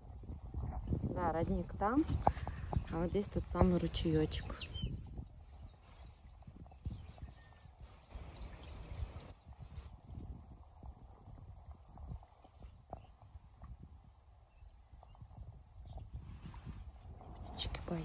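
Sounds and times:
wind and handling on microphone: 0.0s - 18.0s
faint bird chirp: 4.3s - 10.0s.

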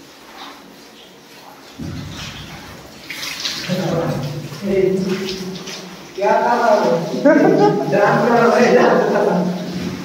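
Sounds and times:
water splashing on soapy floor: 0.0s - 10.0s.

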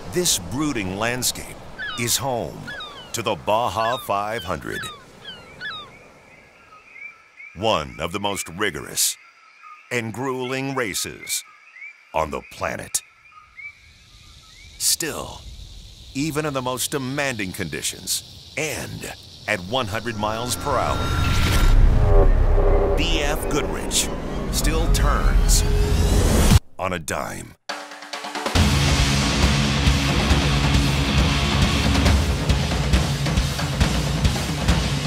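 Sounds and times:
faint outdoor hiss: 0.0s - 24.0s
birds chirping: 0.0s - 25.9s.

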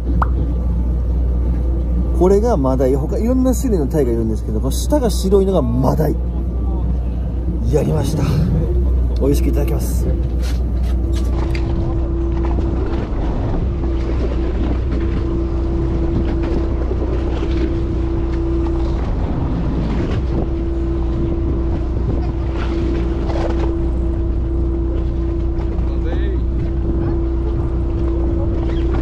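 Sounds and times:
boat engine droning: 0.0s - 29.0s
wind buffeting microphone: 0.0s - 29.0s.

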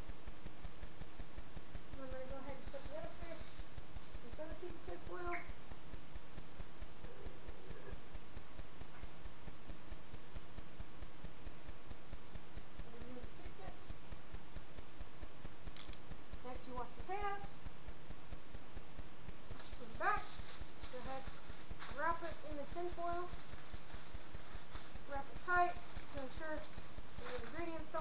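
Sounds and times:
faint crackle: 0.0s - 28.0s
low rumbling background noise: 0.0s - 28.0s.

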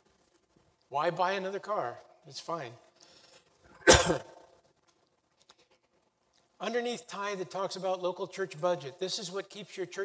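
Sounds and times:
man coughing: 3.8s - 4.5s.

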